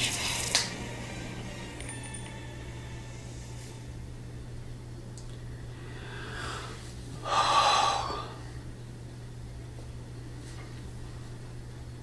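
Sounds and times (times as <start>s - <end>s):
woman gasping: 5.9s - 8.4s.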